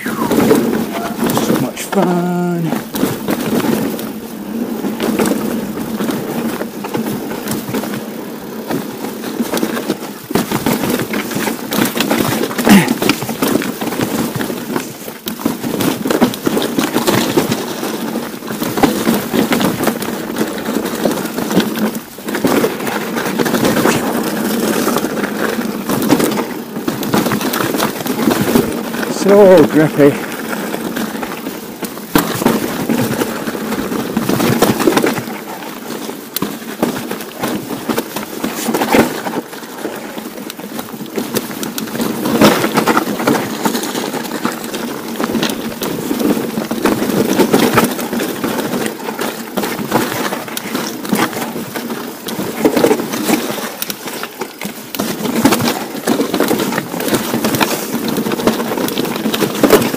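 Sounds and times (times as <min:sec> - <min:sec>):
bike rattling and knocking: 0:00.0 - 0:59.9
tyres crunching over gravel: 0:00.0 - 0:59.9.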